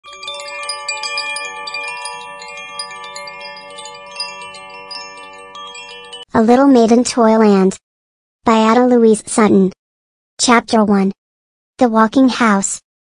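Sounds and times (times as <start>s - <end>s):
bell-like chime notes: 0.0s - 6.3s.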